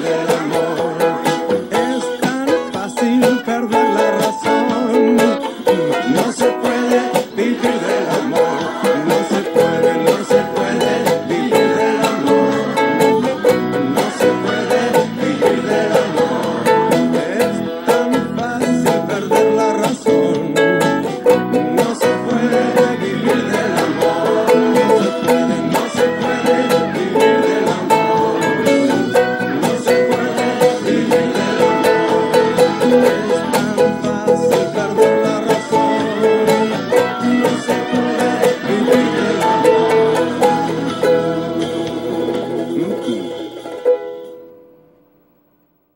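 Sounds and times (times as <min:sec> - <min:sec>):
ukulele strummed: 0:00.0 - 0:45.5.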